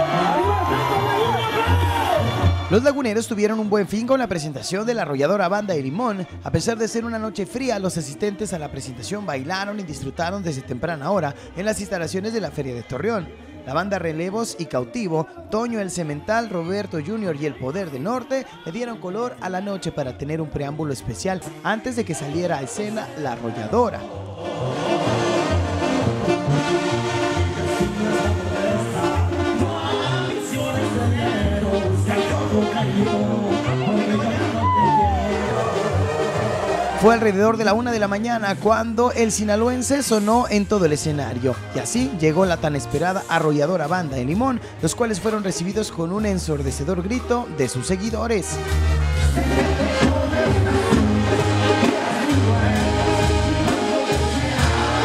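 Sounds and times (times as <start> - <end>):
brass band playing: 0.0 - 2.9, 23.3 - 38.2, 47.2 - 55.0
tuba bass line: 0.0 - 3.4, 23.1 - 55.0
man singing into microphone: 2.7 - 25.6, 27.6 - 48.3
low bass line: 30.6 - 39.6.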